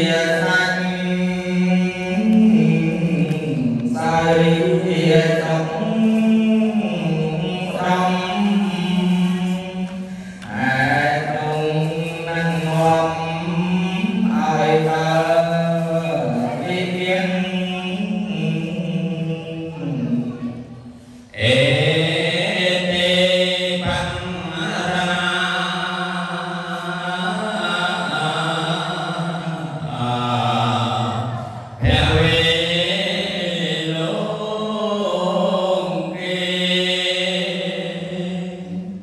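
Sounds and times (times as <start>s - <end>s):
man chanting into a microphone: 0.0s - 39.0s.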